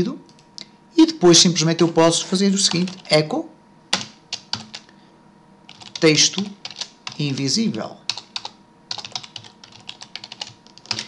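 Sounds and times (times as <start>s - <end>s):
computer keyboard typing: 2.5s - 3.2s, 3.9s - 4.9s, 5.7s - 7.5s, 8.1s - 11.0s.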